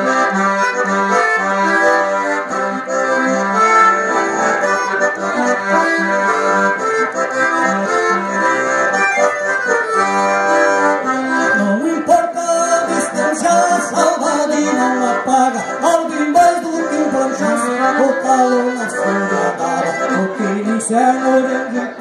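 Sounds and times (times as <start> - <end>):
accordion melody: 0.0 - 22.0
person singing: 11.4 - 22.0.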